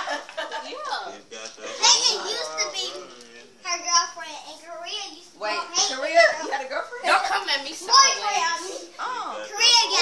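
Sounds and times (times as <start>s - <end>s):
children talking and calling out: 1.8s - 10.0s.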